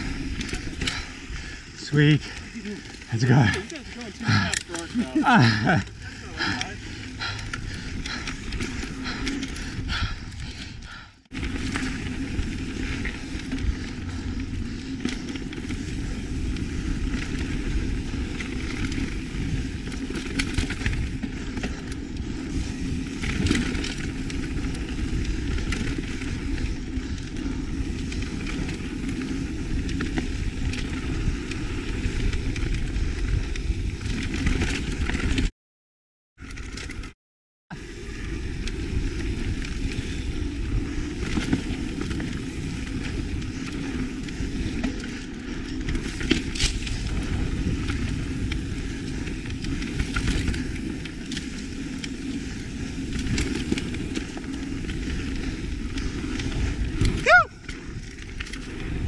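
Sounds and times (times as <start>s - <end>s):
bike rattling on bumps: 0.0s - 35.5s, 37.8s - 59.0s
bike tyres rolling over dirt: 0.0s - 35.5s, 36.4s - 59.0s.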